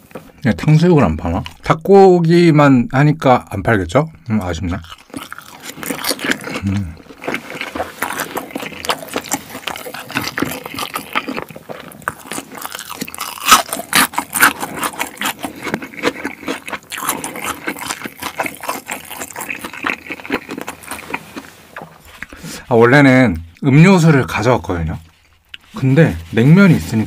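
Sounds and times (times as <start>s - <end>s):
person chewing and smacking: 4.4s - 22.4s, 25.1s - 25.8s.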